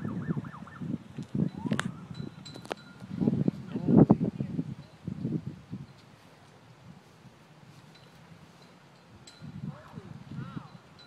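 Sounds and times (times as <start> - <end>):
warbling siren-like tone: 0.0 - 2.4
wind buffeting microphone: 0.0 - 11.0.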